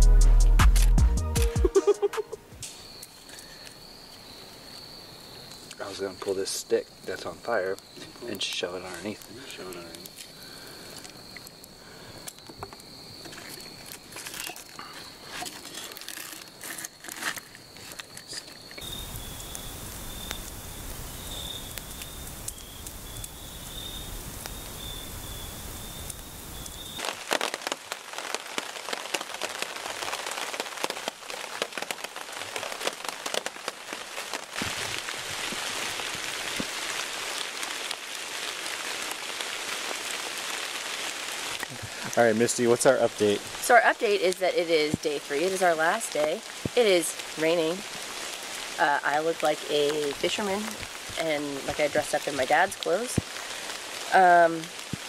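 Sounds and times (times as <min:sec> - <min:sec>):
campfire crackling: 0:00.0 - 0:55.0
rain falling on a tarp: 0:03.0 - 0:55.0.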